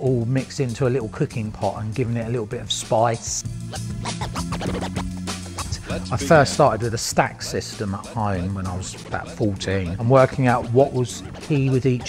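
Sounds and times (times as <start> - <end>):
playing beat: 3.4 - 12.0
vinyl record scratching: 3.6 - 12.0.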